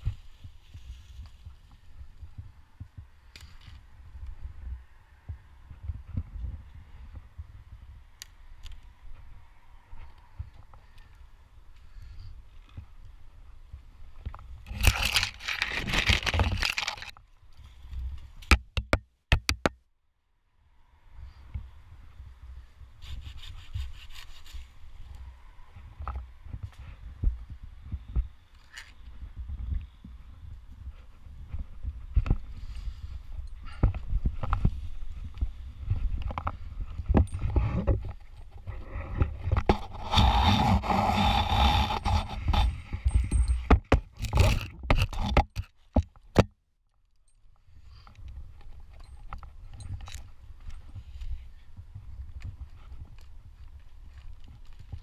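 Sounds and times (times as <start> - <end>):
wood cracking: 14.6 - 17.2
handsaw rasping through branches: 23.0 - 24.8, 39.6 - 43.4.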